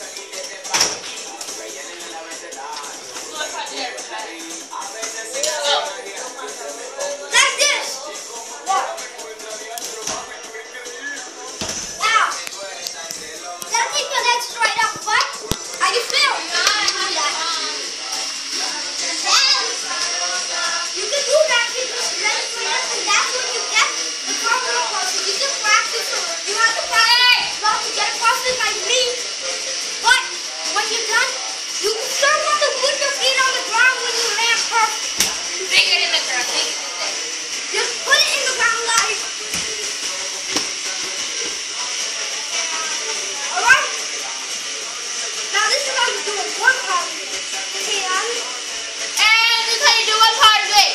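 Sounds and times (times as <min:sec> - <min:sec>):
children shouting and calling: 0:07.0 - 0:09.0, 0:10.8 - 0:12.4, 0:13.6 - 0:17.8, 0:19.0 - 0:29.2, 0:30.0 - 0:39.3, 0:43.5 - 0:44.1, 0:49.2 - 0:50.9.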